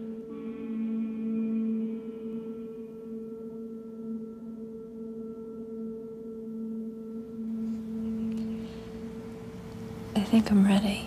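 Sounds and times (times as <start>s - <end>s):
sustained low drone: 0.0s - 11.0s.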